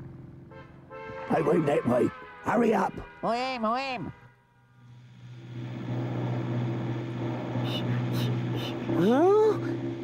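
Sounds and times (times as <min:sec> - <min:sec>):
vehicle engine running: 0:00.0 - 0:01.7, 0:04.8 - 0:10.0.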